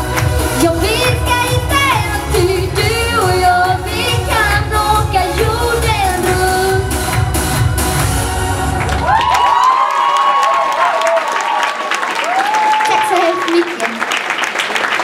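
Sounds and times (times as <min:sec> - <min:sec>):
audience applauding and cheering: 0:00.0 - 0:02.1, 0:06.2 - 0:15.0
song backing track: 0:00.0 - 0:09.5.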